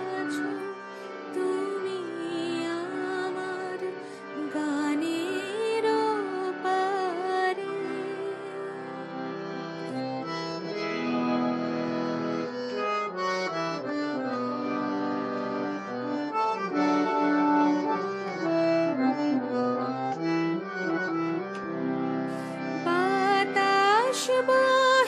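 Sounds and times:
harmonium playing: 0.0s - 25.0s.

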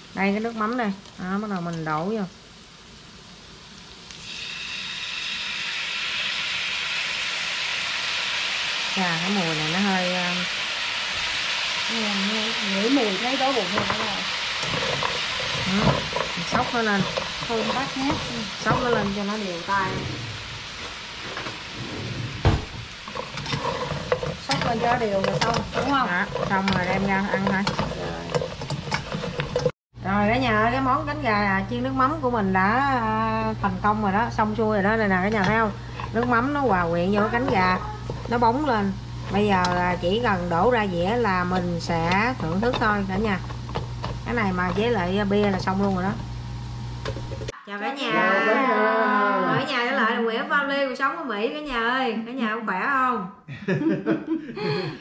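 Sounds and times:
sauce sizzling in a hot pan: 0.0s - 29.7s, 30.6s - 47.6s.

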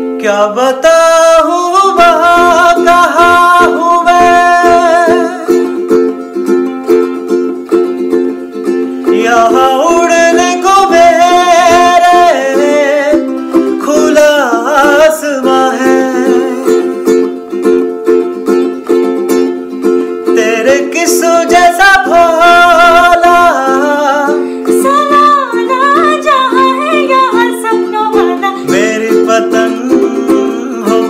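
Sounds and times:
person singing: 0.0s - 31.0s
ukulele strumming chords: 0.0s - 31.0s.

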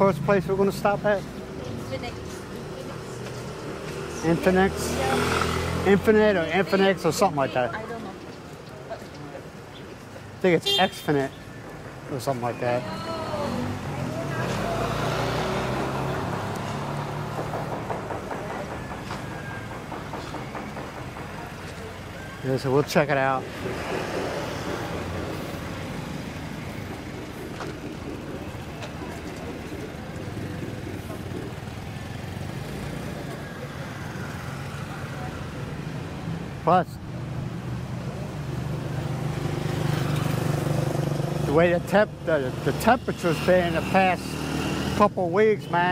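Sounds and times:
motor scooter passing by: 1.7s - 8.0s, 12.8s - 20.4s.

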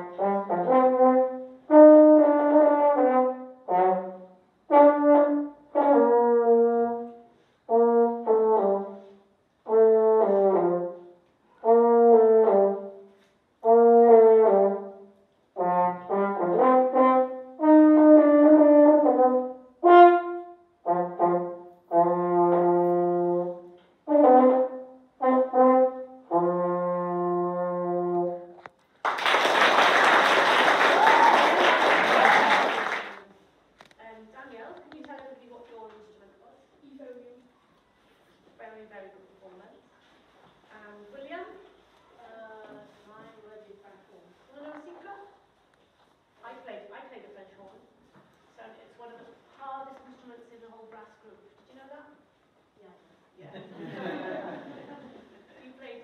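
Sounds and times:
brass instrument melody: 0.0s - 28.7s
applause: 28.9s - 33.3s.

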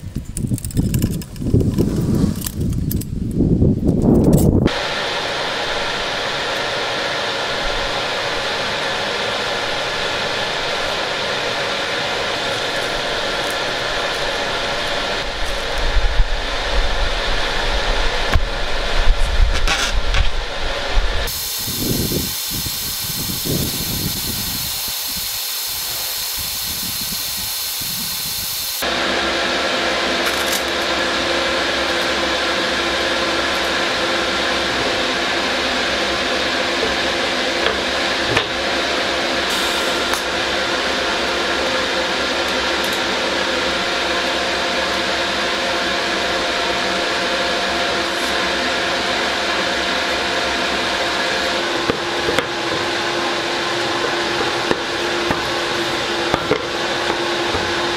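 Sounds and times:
welding arc hissing and buzzing: 4.5s - 57.9s.

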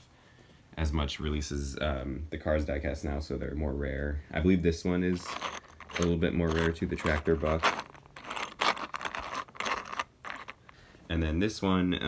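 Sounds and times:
toy tractor scraping on plastic: 5.1s - 10.7s.

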